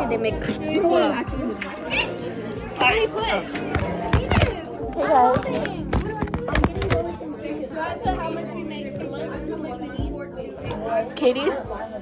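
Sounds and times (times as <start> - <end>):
background music: 0.0 - 12.0
indistinct chatter of voices: 0.0 - 12.0.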